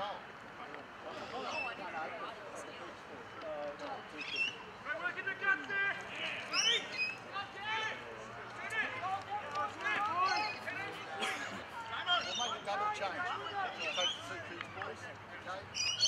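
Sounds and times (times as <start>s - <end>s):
distant players shouting: 4.0s - 16.0s.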